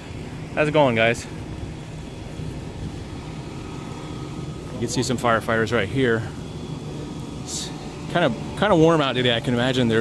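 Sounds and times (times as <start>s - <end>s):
distant fire truck engines running: 0.0s - 10.0s
man talking: 0.5s - 1.4s, 4.6s - 6.4s, 7.4s - 10.0s.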